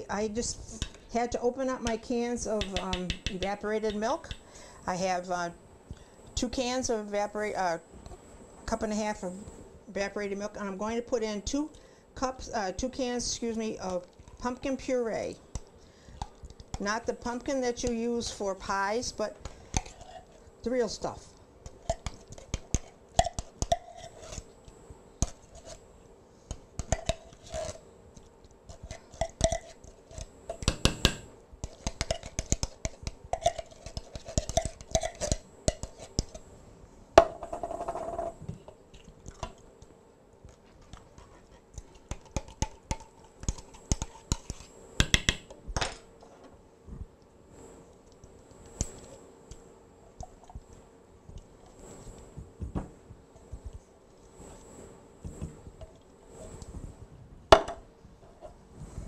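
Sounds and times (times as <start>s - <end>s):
utensil tapping can and bowl: 1.8s - 4.4s, 30.5s - 36.4s, 42.1s - 45.5s
spoon scraping tin can: 19.5s - 20.4s, 21.7s - 24.5s, 26.8s - 27.8s, 31.6s - 36.4s, 41.2s - 44.7s.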